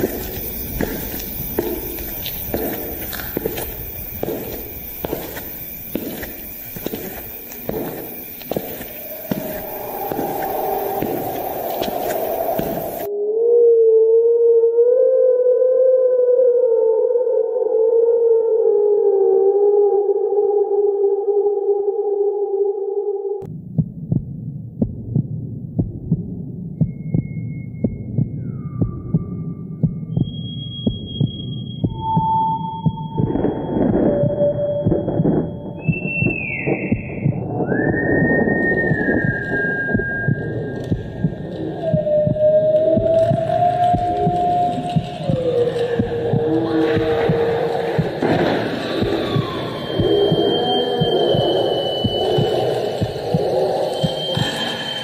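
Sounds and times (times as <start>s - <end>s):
heartbeat-like thumps: 0.0s - 13.1s, 23.5s - 55.0s
held wavering tone: 0.0s - 13.8s, 26.9s - 55.0s.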